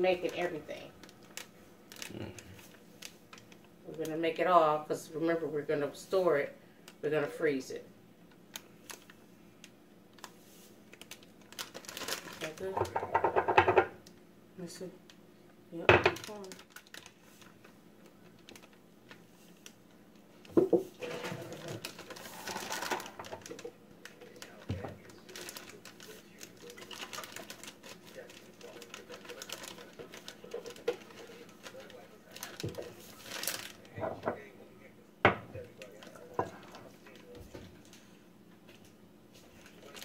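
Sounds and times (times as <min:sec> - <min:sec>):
rustling: 0:16.2 - 0:34.5.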